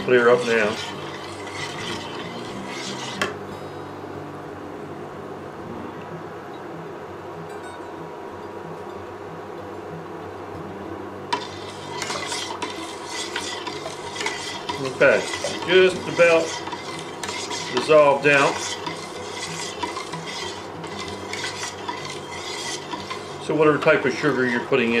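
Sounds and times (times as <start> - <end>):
ladle clinking and scraping pot: 0.0 - 3.4, 11.3 - 25.0
low steady hum: 0.0 - 25.0.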